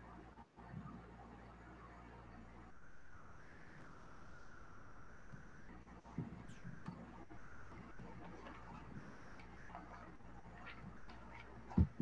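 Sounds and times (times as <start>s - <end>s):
steady low hum: 0.9s - 12.0s
faint clicks: 5.2s - 12.0s.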